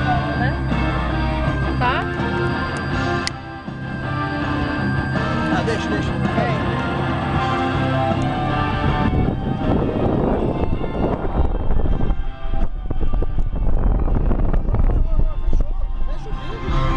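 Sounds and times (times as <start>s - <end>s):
car wind and road rumble: 0.0s - 16.9s
music playing: 0.0s - 16.9s.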